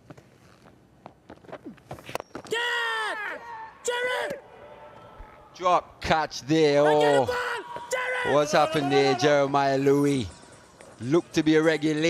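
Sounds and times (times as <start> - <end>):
player shouting: 2.5 - 4.9, 6.8 - 9.9.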